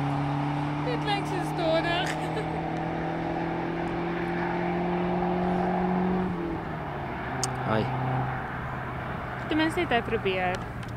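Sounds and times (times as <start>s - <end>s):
car engines accelerating hard: 0.0s - 10.9s.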